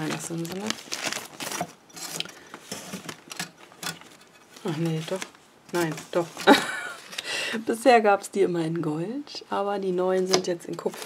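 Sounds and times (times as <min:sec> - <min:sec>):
cellophane crackles and clicks: 0:00.0 - 0:06.3.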